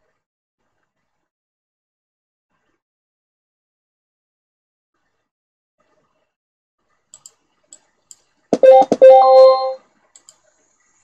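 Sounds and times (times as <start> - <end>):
short chime: 8.6 - 9.8
faint clicks: 10.1 - 10.5.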